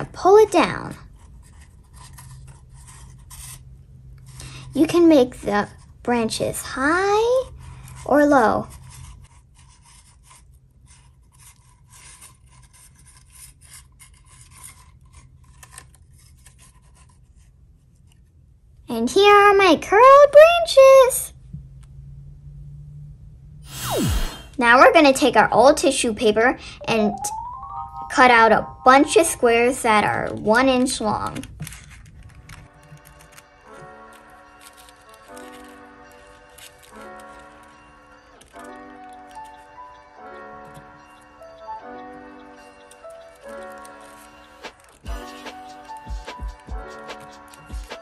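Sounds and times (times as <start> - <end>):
cardboard scraping against pencil: 0.9 - 4.4, 7.4 - 18.3, 31.6 - 37.8, 43.3 - 48.0
falling swoosh transition effect: 23.7 - 24.6.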